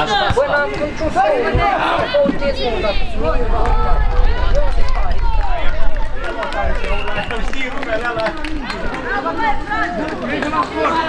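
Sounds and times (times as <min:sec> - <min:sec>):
voices shouting and calling: 0:00.0 - 0:11.0
steady low rumble: 0:02.4 - 0:07.9.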